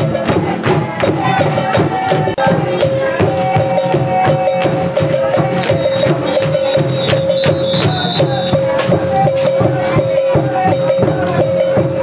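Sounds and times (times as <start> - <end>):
quick steady percussion beat: 0.0 - 12.0.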